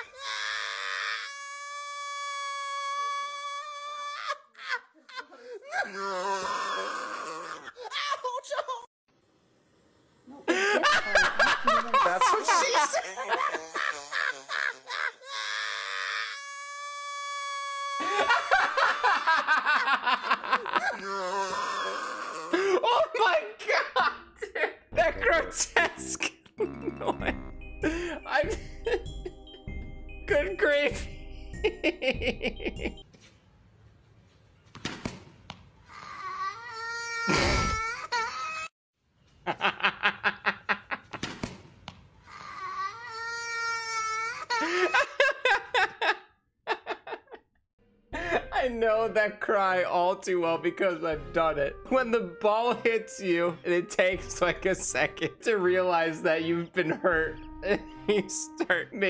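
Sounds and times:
boy crying and wailing: 0.0 - 8.9, 10.5 - 24.1, 35.9 - 38.7, 42.3 - 46.1.

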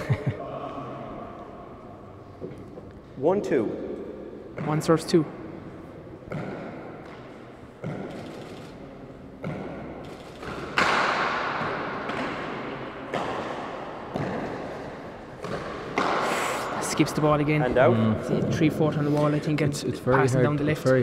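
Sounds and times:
ball smacking court walls with echo: 0.7 - 18.5.

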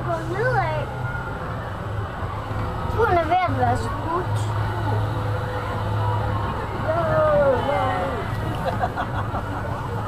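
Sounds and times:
carousel ride low hum: 0.0 - 10.0.

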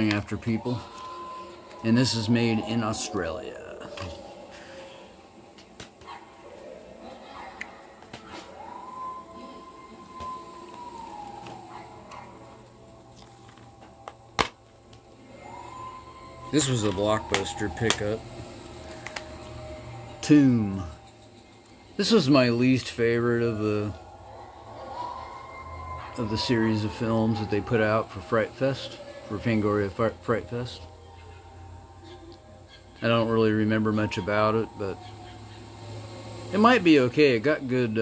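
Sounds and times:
low room hum: 0.0 - 38.0.

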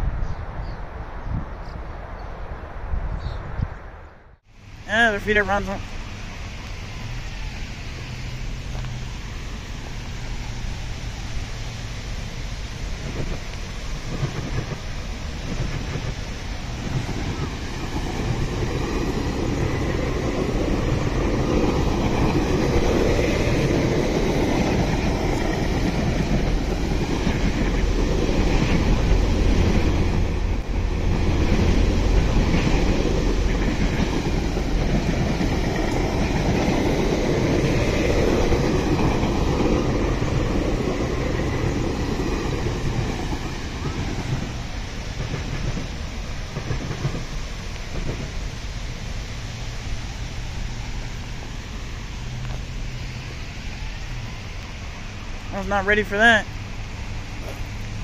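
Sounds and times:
train wheels clattering on rails: 12.9 - 48.6.

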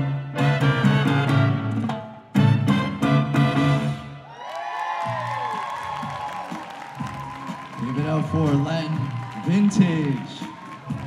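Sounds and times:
audience cheering: 4.2 - 11.0
whoops: 4.2 - 11.0
light applause: 4.3 - 11.0.

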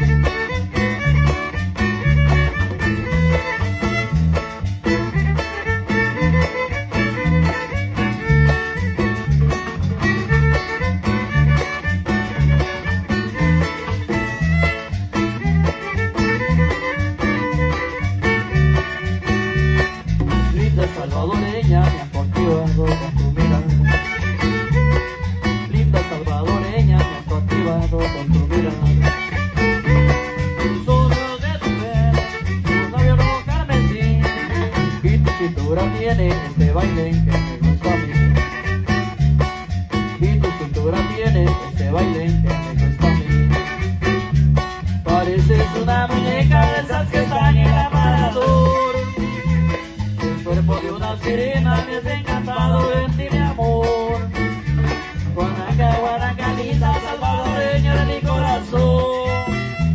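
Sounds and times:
band playing tropical dance music: 0.0 - 59.9
plucked strings: 0.0 - 59.9
steady bass beat: 0.0 - 59.9.

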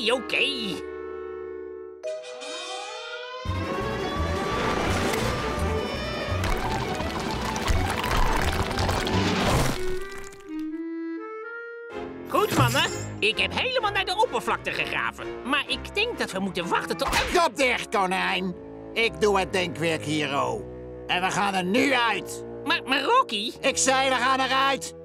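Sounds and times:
orchestral music: 0.0 - 24.9.

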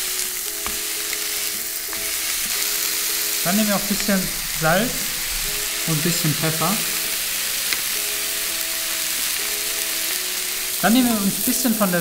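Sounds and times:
burger patties sizzling in a pan: 0.0 - 12.0.

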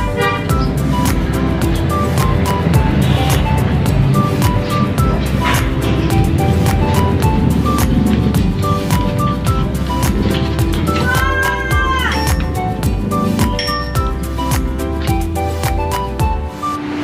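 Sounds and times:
background music with beat: 0.0 - 17.0.

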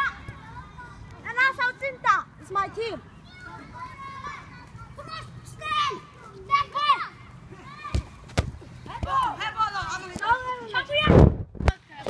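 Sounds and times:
children shouting: 0.0 - 2.0, 3.0 - 8.2.

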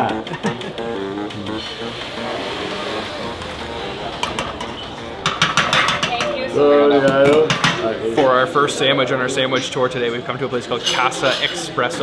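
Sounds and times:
spoon knocking against metal pot: 4.2 - 6.4, 7.1 - 7.8.

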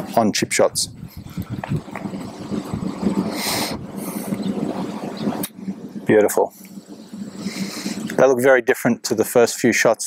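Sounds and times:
steady low rumble: 0.0 - 9.8.

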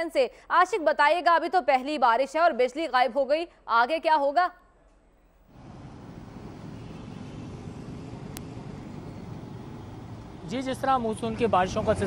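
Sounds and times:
road traffic rumble: 5.5 - 12.0.

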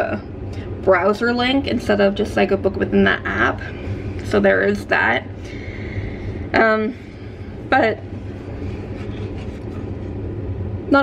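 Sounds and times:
faint hum: 0.0 - 11.0
low rumble: 0.0 - 11.0.

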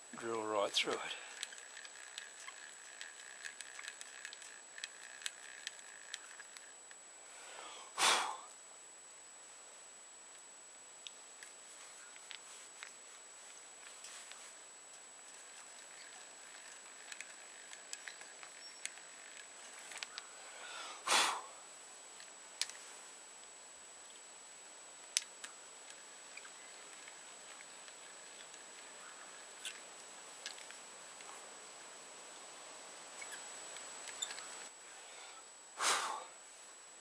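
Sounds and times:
faint high whine: 0.0 - 37.0.

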